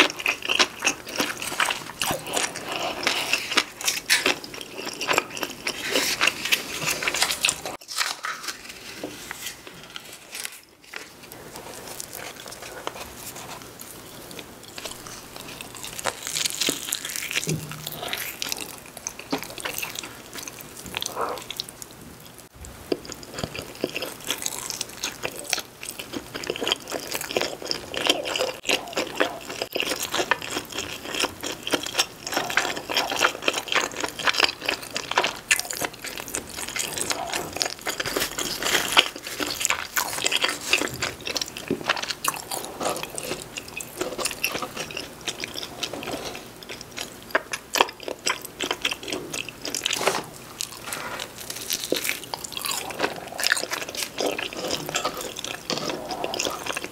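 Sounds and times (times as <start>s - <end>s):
chewing and biting pizza: 0.0s - 8.7s, 9.4s - 22.0s, 22.8s - 56.9s.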